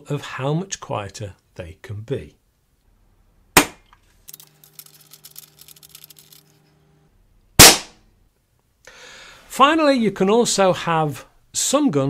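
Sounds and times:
air gun shots: 0:07.6 - 0:08.0.

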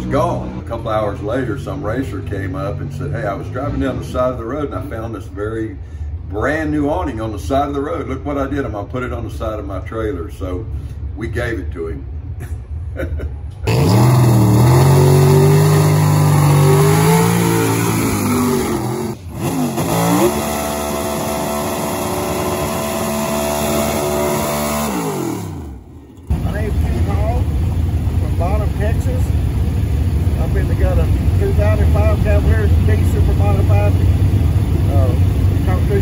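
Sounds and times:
race car engines revving: 0:00.0 - 0:07.0, 0:12.5 - 0:36.0
low engine rumble: 0:00.0 - 0:36.0
voices: 0:30.4 - 0:34.1, 0:34.8 - 0:36.0.

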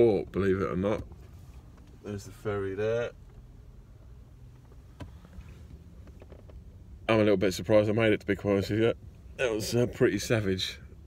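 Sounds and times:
low rumble inside car: 0:00.0 - 0:11.0.

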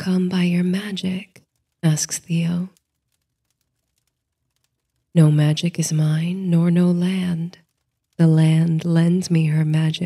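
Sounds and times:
faint scattered clicks: 0:01.3 - 0:10.0.

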